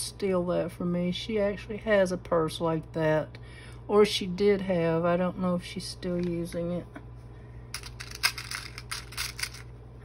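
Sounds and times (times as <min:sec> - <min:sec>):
jewelry charms clicking and rattling: 0:07.7 - 0:09.7.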